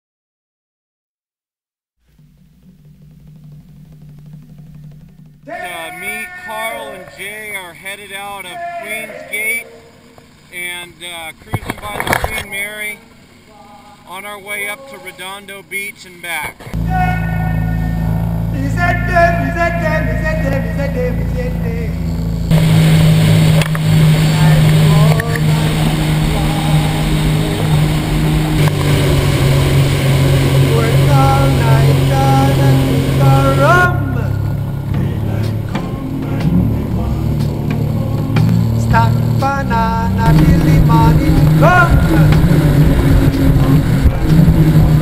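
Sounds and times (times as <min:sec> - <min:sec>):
personal watercraft engine: 0:02.0 - 0:45.0
hiss of wind and spray: 0:22.5 - 0:30.7.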